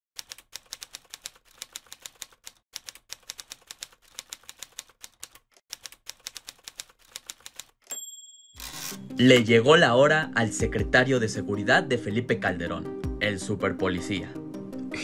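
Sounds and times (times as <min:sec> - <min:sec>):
typewriter keystrokes clacking: 0:00.2 - 0:07.8
typewriter bell ding: 0:07.8 - 0:09.4.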